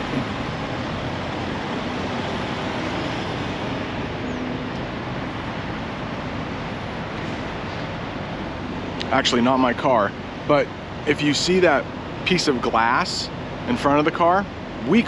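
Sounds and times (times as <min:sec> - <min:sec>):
trucks idling and traffic rumble: 0:00.0 - 0:15.0.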